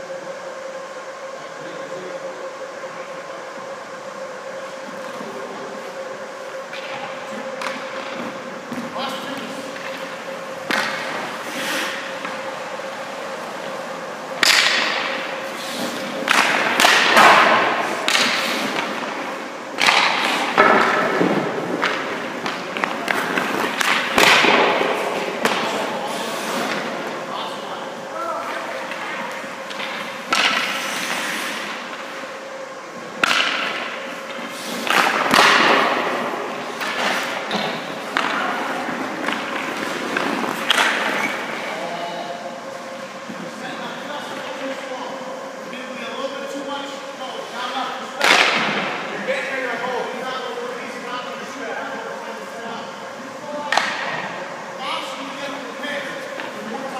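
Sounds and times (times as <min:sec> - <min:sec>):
steady hum: 0:00.0 - 0:56.9
thuds of pads or pucks: 0:07.6 - 0:12.6, 0:14.4 - 0:25.9, 0:28.5 - 0:32.1, 0:33.1 - 0:41.6, 0:48.2 - 0:49.0, 0:53.6 - 0:54.3
skate blades scraping on ice: 0:09.4 - 0:13.6, 0:29.8 - 0:32.2.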